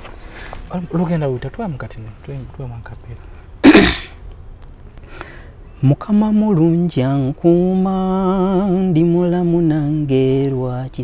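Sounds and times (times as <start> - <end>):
man coughing: 3.6 - 4.2.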